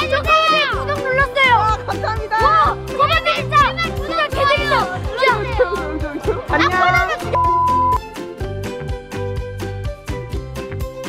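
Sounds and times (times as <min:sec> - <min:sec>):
children shouting excitedly: 0:00.0 - 0:07.4
music with a steady beat: 0:01.3 - 0:11.0.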